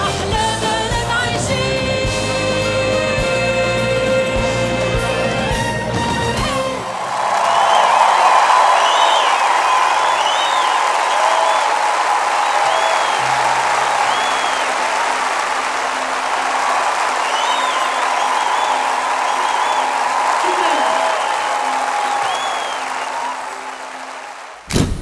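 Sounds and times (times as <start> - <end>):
audience applauding and cheering: 0.0 - 24.7
whoops and whistles: 7.4 - 14.8, 17.2 - 23.6.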